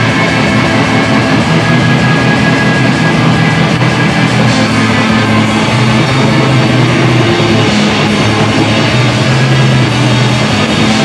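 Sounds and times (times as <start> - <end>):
bass: 0.0 - 11.0
distorted electric guitars: 0.0 - 11.0
drums: 0.0 - 11.0.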